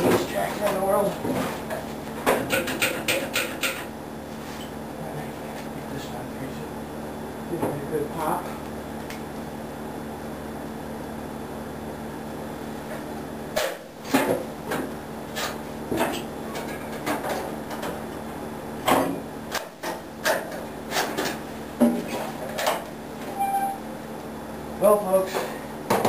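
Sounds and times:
steady hum: 0.0s - 26.0s.

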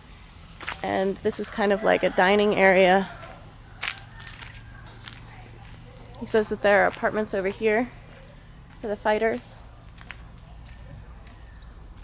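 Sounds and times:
footsteps on dirt path: 0.6s - 0.9s, 3.2s - 12.0s.

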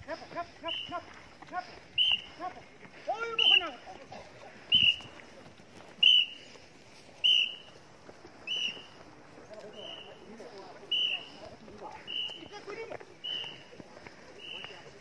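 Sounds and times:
men shouting and chanting: 0.0s - 4.9s
shrill whistle blasts: 0.7s - 1.0s, 2.0s - 2.3s, 3.4s - 3.7s, 4.7s - 5.1s, 6.0s - 6.4s, 7.2s - 7.7s, 8.4s - 8.9s, 10.9s - 11.3s, 12.1s - 12.5s, 13.2s - 13.6s.

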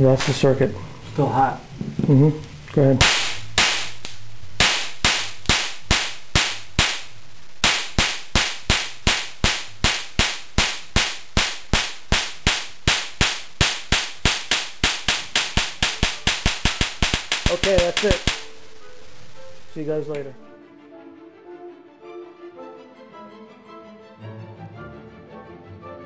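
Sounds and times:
sharp electric spark snaps: 0.0s - 0.6s, 2.4s - 20.4s.

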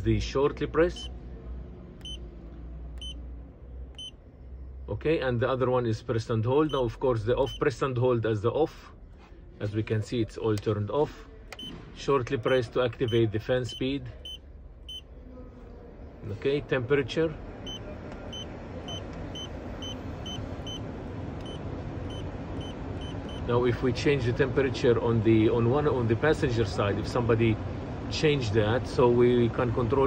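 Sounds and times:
high electronic beeps: 4.0s - 4.2s, 12.5s - 15.0s.

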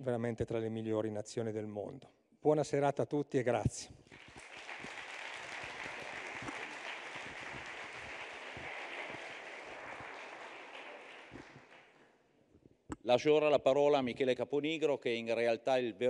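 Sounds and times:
audience applauding: 4.1s - 12.1s.

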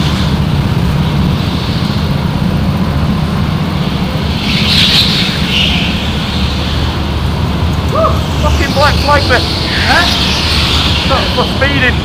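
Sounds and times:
go-kart engine drone: 0.0s - 12.0s.

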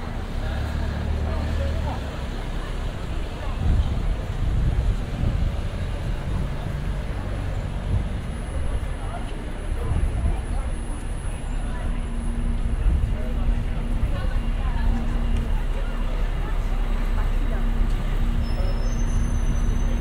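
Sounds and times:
passers-by talking: 0.0s - 20.0s
traffic rumble: 0.0s - 20.0s.

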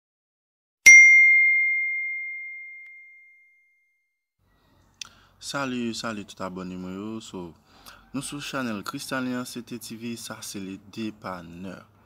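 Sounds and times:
notification bell ding: 0.9s - 3.6s.

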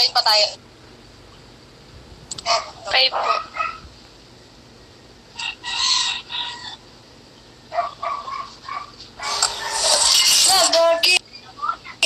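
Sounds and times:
rooster crowing: 5.3s - 6.8s.

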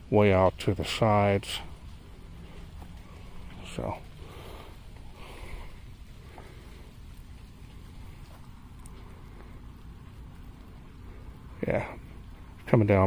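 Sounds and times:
rain and wind rumble: 0.0s - 13.0s
faint ticks: 1.6s - 12.8s.

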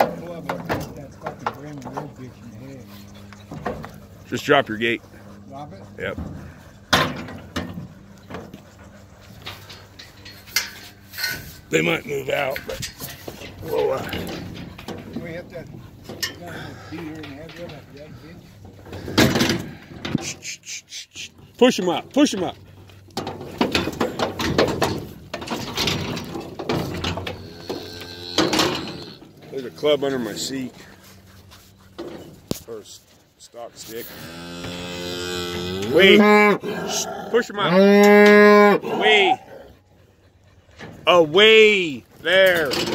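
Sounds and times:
metal trailer gate rattling: 9.4s - 20.2s, 23.2s - 29.4s
metal gate slamming shut: 23.2s - 29.2s.

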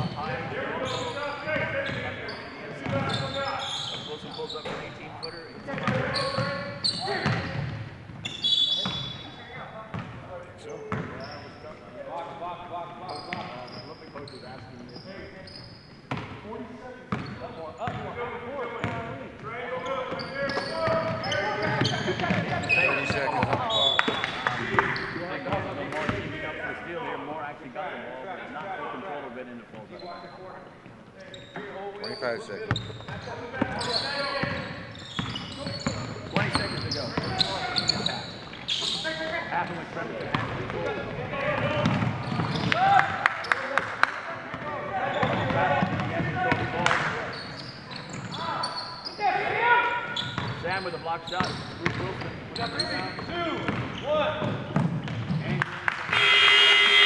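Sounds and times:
shoe squeaks: 0.0s - 7.6s, 8.2s - 9.6s, 10.6s - 11.8s, 13.0s - 16.2s, 19.8s - 25.5s, 29.8s - 30.6s, 31.2s - 39.5s, 41.7s - 42.8s, 47.2s - 54.4s, 56.1s - 57.0s
players and spectators voices: 0.0s - 57.0s.

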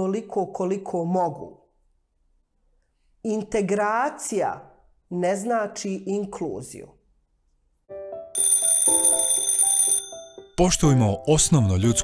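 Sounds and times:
alarm clock bell ringing: 8.4s - 10.8s.

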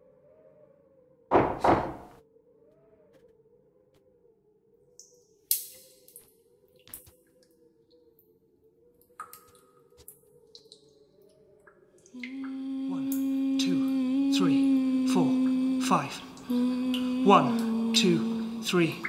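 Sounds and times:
faint wavering drone: 12.2s - 19.0s.

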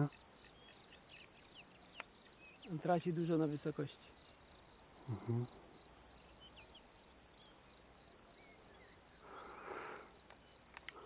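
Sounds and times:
insects chirping trill: 0.0s - 11.0s
faint clicks: 10.3s - 11.0s.

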